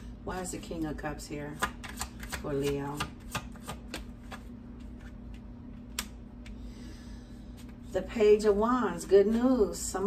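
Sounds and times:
faint hum: 0.0 - 10.0
cards being shuffled: 1.6 - 6.2.

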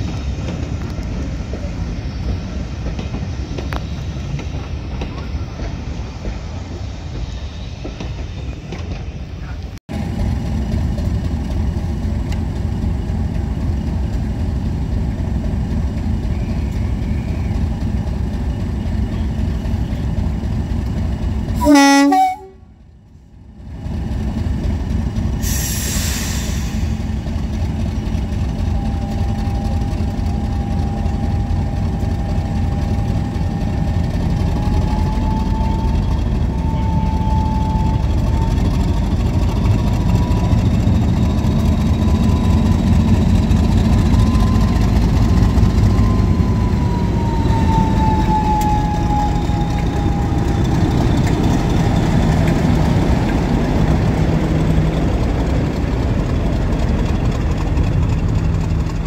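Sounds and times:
diesel locomotive engine rumbling: 0.0 - 59.0
rising whine: 27.9 - 59.0.

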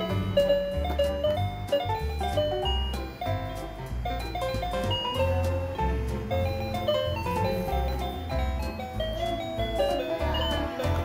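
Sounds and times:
chime-like electronic melody: 0.0 - 11.0
light percussion: 0.0 - 11.0
steady bass line: 0.0 - 11.0.

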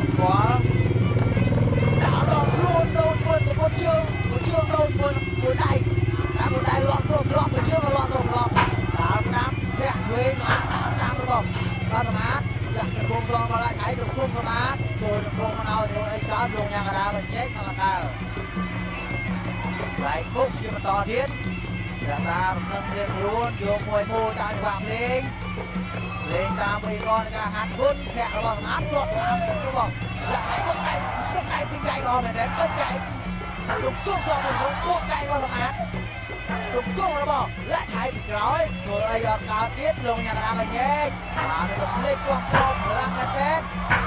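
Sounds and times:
commentator speaking: 0.0 - 0.8, 1.8 - 44.0
droning pulsing accompaniment: 0.0 - 44.0
reedy wind melody: 0.0 - 44.0.

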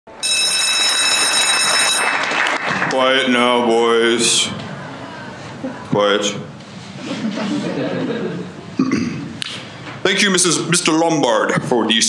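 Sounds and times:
electric bell ringing: 0.1 - 2.3.

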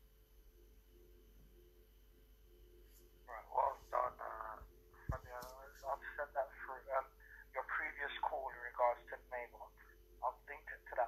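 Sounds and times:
person talking through phone speaker: 3.3 - 11.0.

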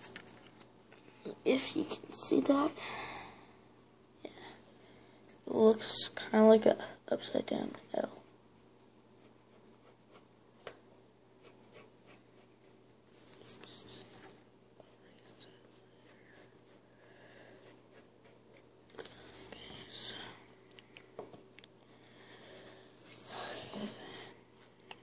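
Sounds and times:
pencil scratching on paper: 7.7 - 10.3, 11.4 - 12.8, 15.7 - 16.9, 17.5 - 20.1.

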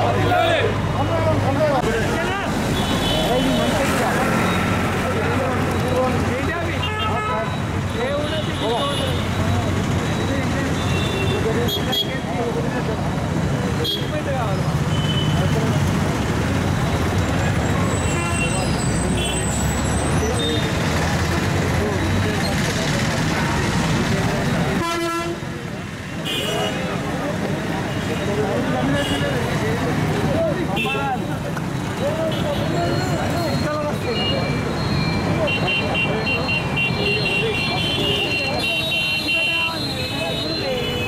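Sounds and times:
crowd chatter: 0.0 - 41.0
traffic running: 0.0 - 41.0
vehicle horns tooting: 2.7 - 4.7, 6.8 - 9.6, 10.7 - 12.3, 17.9 - 19.6, 24.8 - 25.5, 26.2 - 26.9, 32.2 - 41.0.

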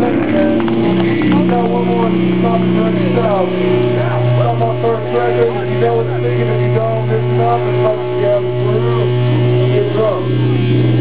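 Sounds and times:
electric guitar and bass chord: 0.0 - 11.0
man calling out: 1.3 - 10.3.

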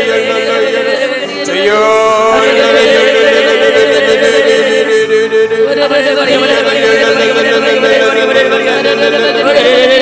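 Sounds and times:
person praying in tongues: 0.0 - 10.0.

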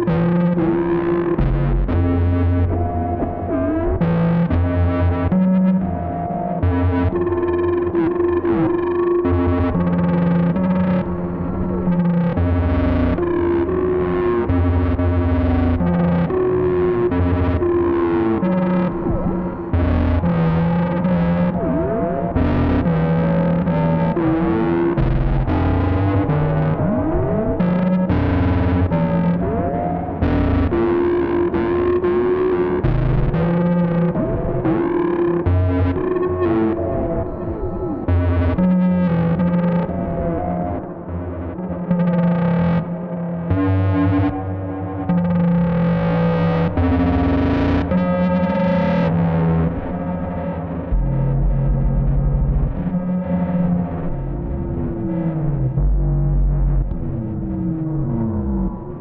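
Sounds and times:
low stepping bass notes: 0.0 - 8.2, 17.1 - 29.3, 42.7 - 59.0
sweeping synthesizer tones: 0.0 - 59.0.

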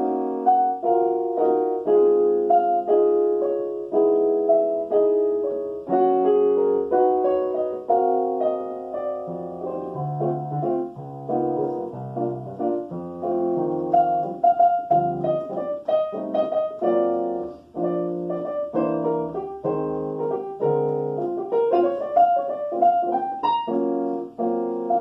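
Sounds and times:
stage piano playing jazz waltz: 0.0 - 25.0.

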